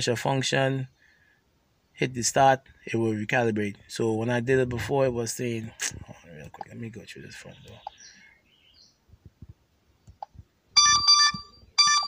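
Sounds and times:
high-pitched electronic beeps: 10.8s - 12.0s.

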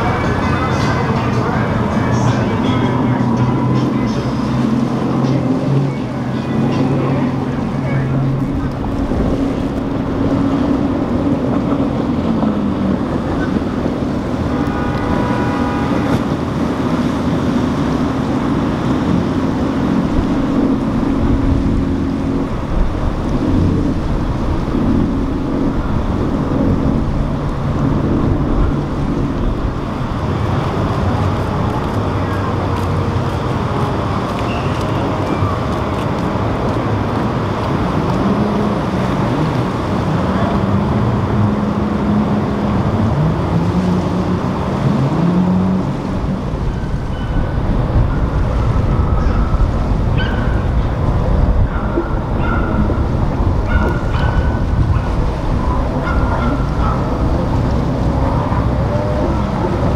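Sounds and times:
boat engines running: 0.0s - 59.9s
hull wash through water: 0.0s - 59.9s
wind on microphone: 0.0s - 59.9s.

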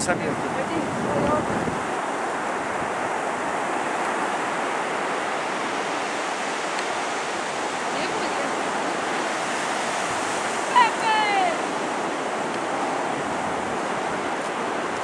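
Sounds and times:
ocean surf breaking on beach: 0.0s - 15.0s.

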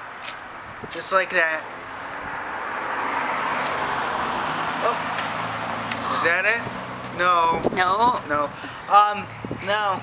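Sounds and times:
car driving past: 1.8s - 7.2s.

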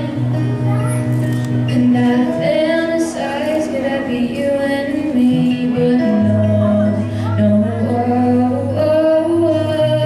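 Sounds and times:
girl singing country song: 0.0s - 10.0s
strummed acoustic guitar: 0.0s - 10.0s.

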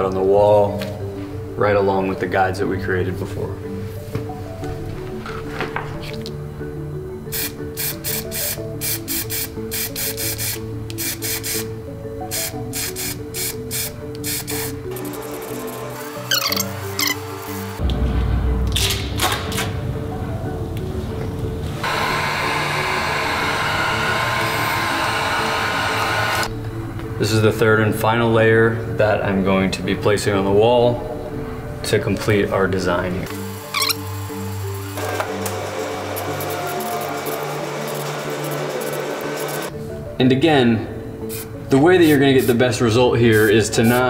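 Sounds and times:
background music: 0.0s - 44.0s
spray paint can hissing: 7.3s - 11.7s, 12.3s - 17.8s.

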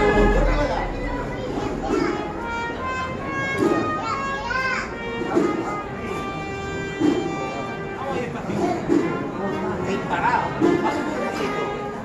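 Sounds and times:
children's voices: 0.0s - 9.5s
brass band playing held notes: 0.0s - 12.0s
crowd chatter and calls: 0.0s - 12.0s.

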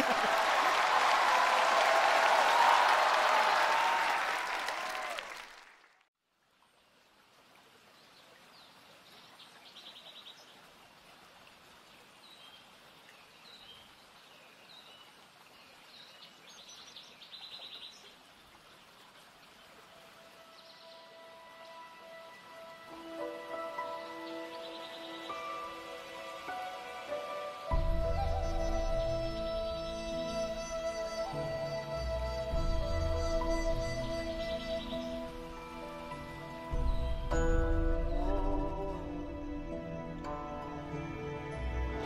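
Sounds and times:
audience applauding and laughing: 0.0s - 5.9s
flowing water: 0.0s - 42.0s
soft sustained music notes: 20.1s - 42.0s.

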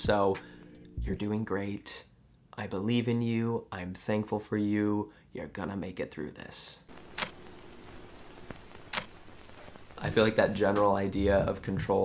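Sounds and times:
faint steady hiss: 0.0s - 12.0s
sharp clicks: 6.9s - 9.3s.

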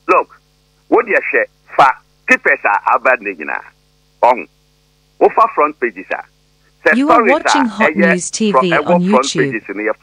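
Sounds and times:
faint electrical hum: 0.0s - 10.0s
man speaking: 0.1s - 4.5s, 5.2s - 6.3s, 6.9s - 10.0s.

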